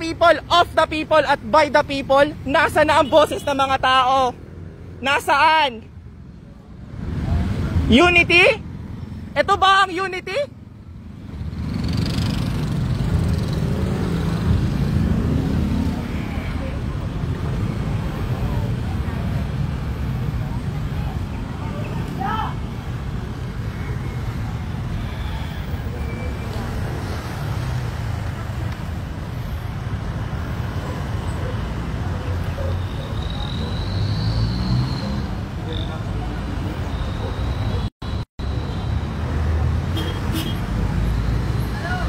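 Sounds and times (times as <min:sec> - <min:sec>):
road traffic rumble: 0:00.0 - 0:42.0.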